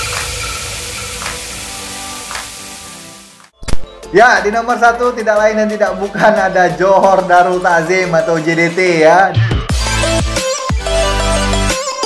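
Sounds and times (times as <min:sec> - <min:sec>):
hissing noise tail: 0:00.0 - 0:03.5.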